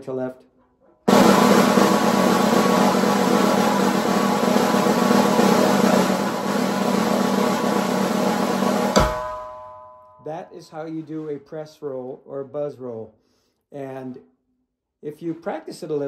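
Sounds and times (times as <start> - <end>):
snare drum buzz roll: 1.1 - 9.8.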